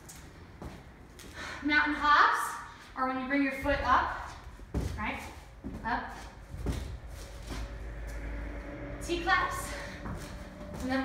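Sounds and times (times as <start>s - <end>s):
low room hum: 0.0s - 11.0s
feet landing on rubber floor: 4.5s - 7.7s.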